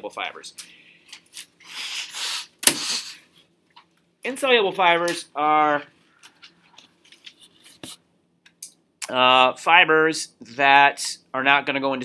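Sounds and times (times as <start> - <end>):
sharp snap: 2.6 - 3.1.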